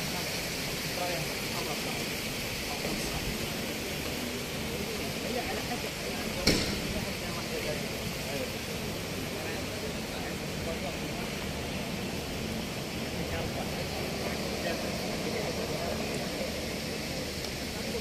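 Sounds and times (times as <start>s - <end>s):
crowd voices: 0.0s - 18.0s
traffic noise: 0.0s - 18.0s
sharp bang: 6.4s - 7.0s.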